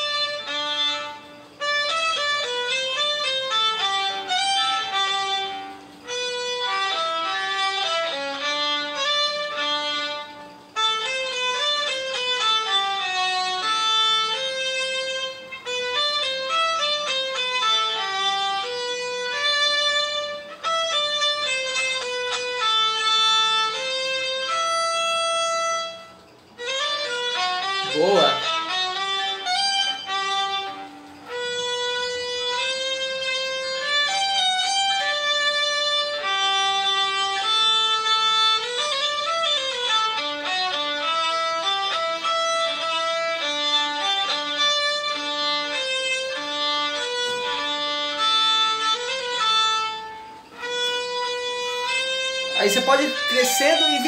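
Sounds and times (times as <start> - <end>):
solo violin with vibrato: 0.0 - 54.0.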